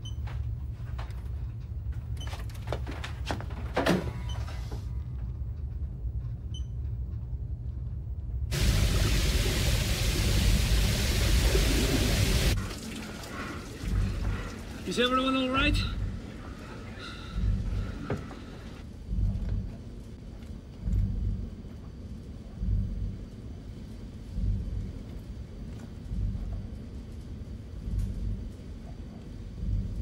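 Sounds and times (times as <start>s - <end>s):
low submarine rumble: 13.3s - 30.0s.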